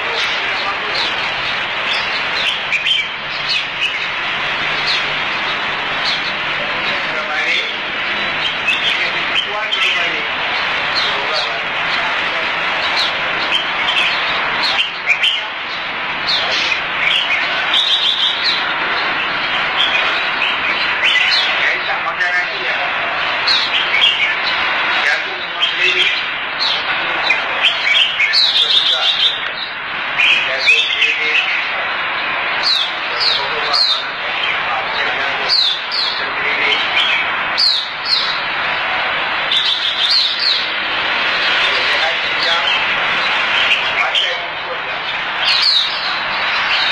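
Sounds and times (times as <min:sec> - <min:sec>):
bird chirping: 0:00.0 - 0:31.8, 0:32.6 - 0:46.9
dense noisy background: 0:00.0 - 0:46.9.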